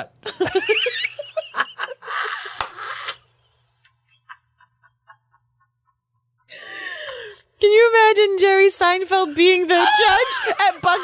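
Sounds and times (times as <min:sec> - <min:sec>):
breathy laughter: 0:00.3 - 0:07.4.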